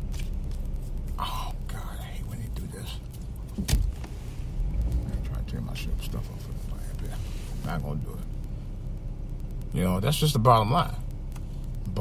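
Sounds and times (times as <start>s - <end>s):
road rumble inside car: 0.0s - 12.0s
sharp thump: 3.6s - 4.1s.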